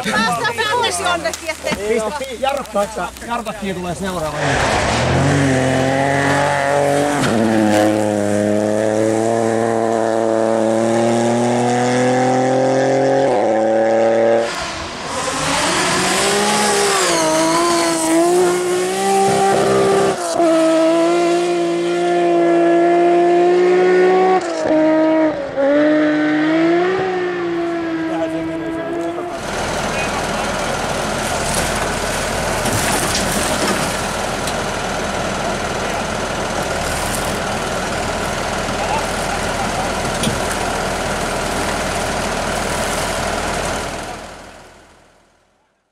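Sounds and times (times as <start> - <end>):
rally car engine revving: 3.4 - 45.3
tractor engine running: 28.9 - 45.5.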